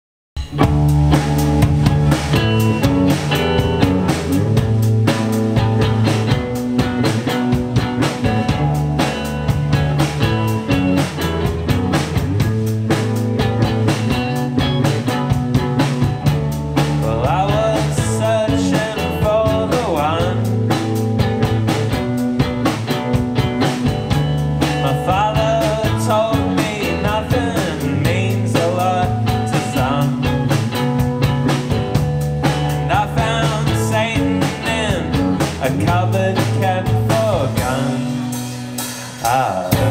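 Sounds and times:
live rock band playing: 0:00.4 - 0:39.9
person singing: 0:17.0 - 0:20.6, 0:24.7 - 0:30.5, 0:32.8 - 0:38.4, 0:39.2 - 0:39.9.

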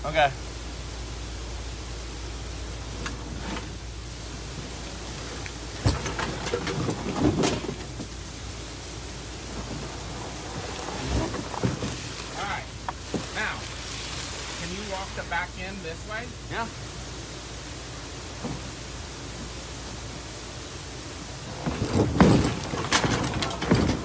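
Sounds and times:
steady rushing noise: 0:00.0 - 0:24.0
canoe hull scraping on rocks: 0:02.8 - 0:08.2, 0:09.3 - 0:15.1, 0:21.3 - 0:24.0.

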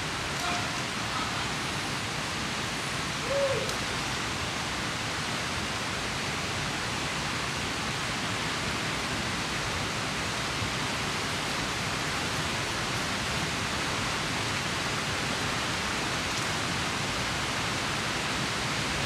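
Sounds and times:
stream rushing over rocks: 0:00.0 - 0:19.0.

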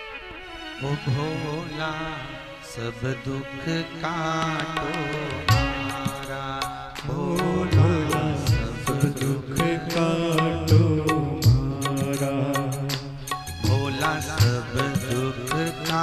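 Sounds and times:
devotional music melody: 0:00.0 - 0:16.0
regular drum beats: 0:04.6 - 0:16.0.

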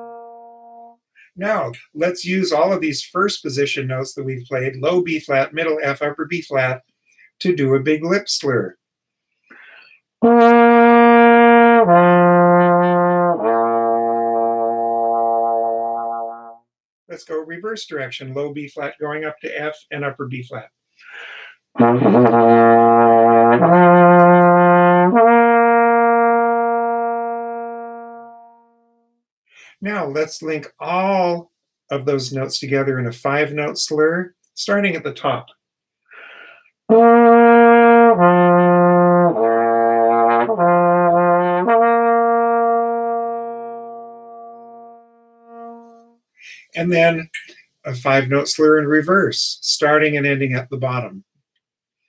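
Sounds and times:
trombone long low tone: 0:00.0 - 0:01.0, 0:10.2 - 0:16.6, 0:21.8 - 0:28.6, 0:36.9 - 0:46.1
breath in: 0:09.4 - 0:10.1, 0:21.0 - 0:21.7, 0:29.5 - 0:29.8, 0:36.1 - 0:36.8
trombone lip slur: 0:21.8 - 0:28.1.

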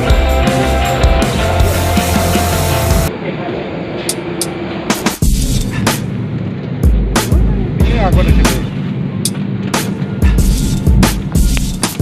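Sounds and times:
steady hum: 0:00.0 - 0:03.3.

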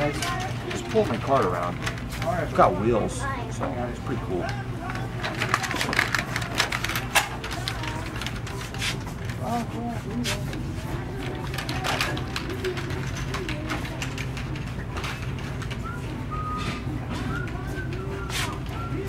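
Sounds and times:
wheeled basket rattling on tiles: 0:00.0 - 0:02.7, 0:04.3 - 0:09.6, 0:10.9 - 0:16.0
faint voices: 0:00.0 - 0:19.0.

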